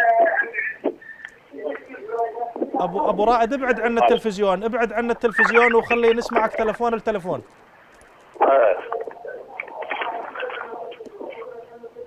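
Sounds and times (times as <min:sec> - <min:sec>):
garbled muffled sounds: 0:00.0 - 0:12.0
steady telephone line hum: 0:00.0 - 0:12.0.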